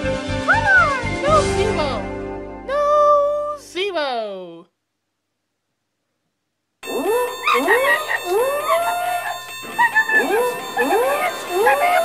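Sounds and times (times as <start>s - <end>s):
animal howls: 7.0s - 12.0s.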